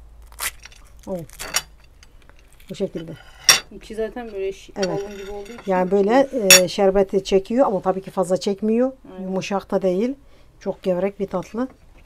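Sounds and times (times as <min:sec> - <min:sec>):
crisp pastry crackling and crunching: 0:00.1 - 0:01.8.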